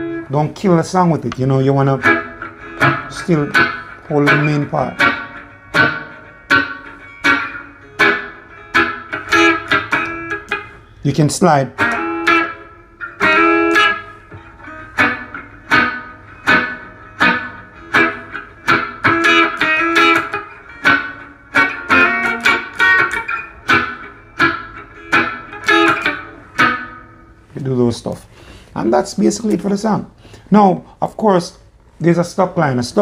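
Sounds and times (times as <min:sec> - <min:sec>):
electric guitar playing reggae chords: 0:00.0 - 0:27.6.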